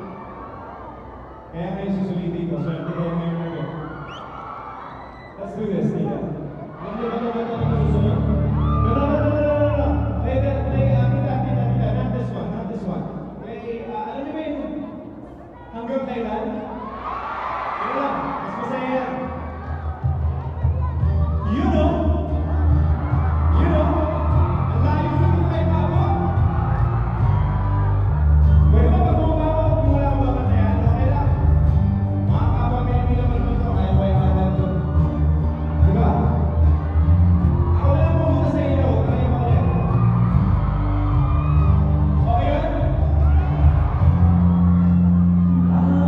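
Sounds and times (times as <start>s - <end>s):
audience whooping and cheering: 0.0s - 12.4s, 16.5s - 46.0s
amplified backing music: 6.4s - 13.7s, 18.6s - 46.0s.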